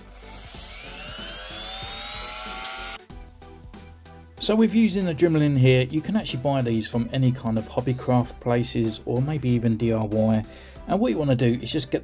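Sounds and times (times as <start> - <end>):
rotary tool whine: 0.0 - 3.0.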